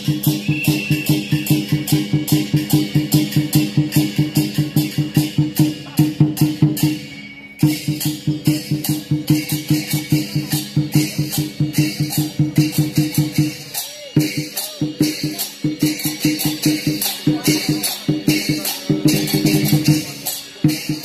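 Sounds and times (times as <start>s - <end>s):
cymbals crashing: 0.0s - 21.0s
drum beating fast rhythm: 0.0s - 21.0s.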